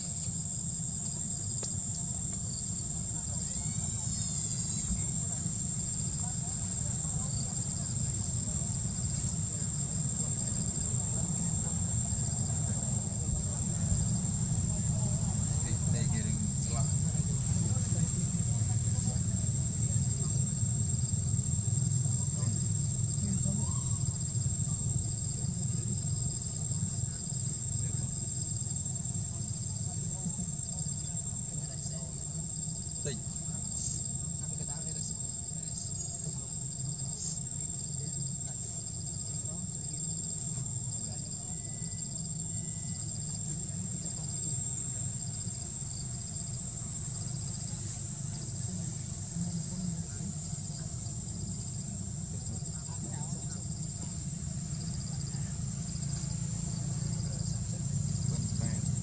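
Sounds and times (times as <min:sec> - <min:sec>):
insect chirping: 0:00.0 - 0:59.0
insects buzzing: 0:00.0 - 0:59.0.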